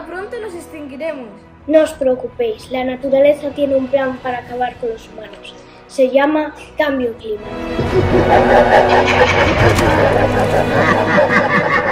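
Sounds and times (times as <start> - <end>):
children laughing: 7.8 - 11.9.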